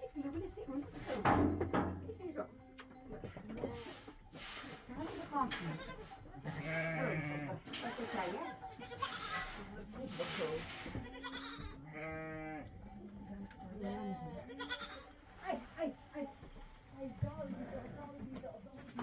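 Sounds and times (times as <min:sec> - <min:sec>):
goat kids bleating: 0:05.2 - 0:07.8, 0:08.5 - 0:09.7, 0:10.9 - 0:12.8, 0:14.1 - 0:15.3, 0:18.7 - 0:19.0.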